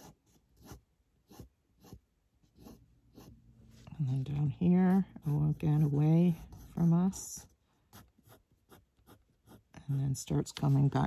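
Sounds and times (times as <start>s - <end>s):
pen scratching on paper: 0.0s - 3.3s, 5.2s - 9.8s.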